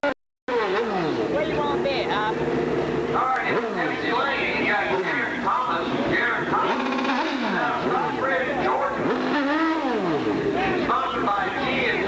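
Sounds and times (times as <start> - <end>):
motorcycle engine revving: 0.0 - 12.0.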